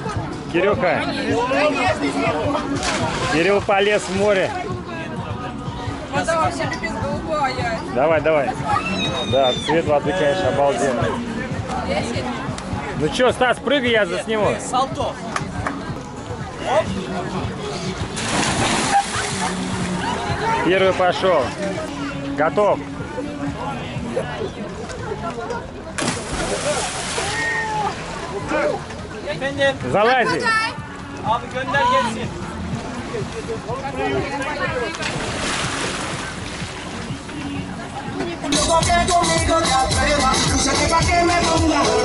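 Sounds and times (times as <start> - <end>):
people's voices: 0.0 - 42.0
water splash: 2.7 - 4.3, 18.1 - 20.1, 26.0 - 28.4, 34.9 - 37.1
swimmer splashing into water: 18.2 - 19.7, 26.0 - 28.1.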